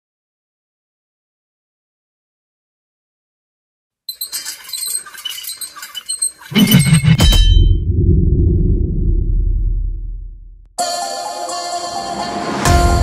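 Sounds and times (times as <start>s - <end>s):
high clinks and jingles: 4.1s - 7.7s
long deep rumble: 6.6s - 10.7s.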